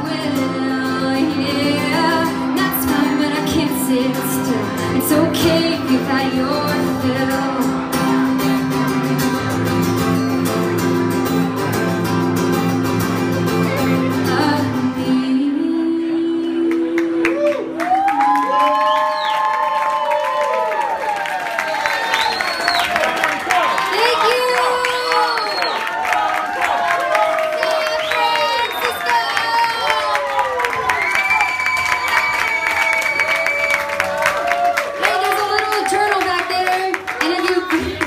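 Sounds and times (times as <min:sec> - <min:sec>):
woman singing: 0:00.0 - 0:08.9, 0:13.7 - 0:17.7, 0:35.0 - 0:38.0
acoustic guitar: 0:00.0 - 0:17.8
audience cheering and whooping: 0:17.2 - 0:38.0.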